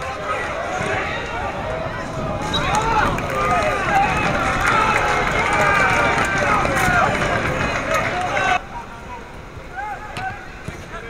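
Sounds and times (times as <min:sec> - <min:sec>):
people shouting: 0:00.0 - 0:08.6.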